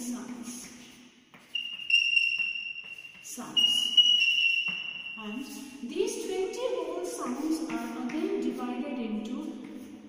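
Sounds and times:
high-pitched whistle-like tone: 1.5 - 5.6.

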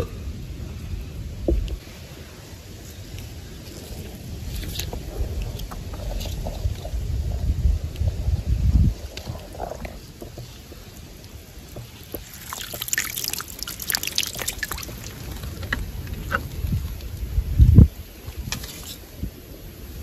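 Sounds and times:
low rumble: 0.0 - 10.2
water dripping into stream pool: 9.1 - 17.2.

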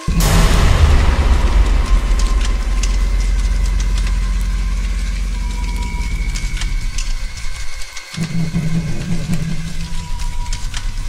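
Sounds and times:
deep rumbling ambient drone: 0.0 - 11.0.

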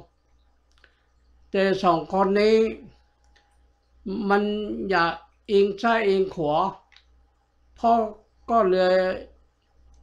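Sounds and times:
faint clicks: 0.3 - 1.3, 3.2 - 4.0, 9.6 - 10.0
person speaking: 1.6 - 2.8, 4.1 - 6.8.

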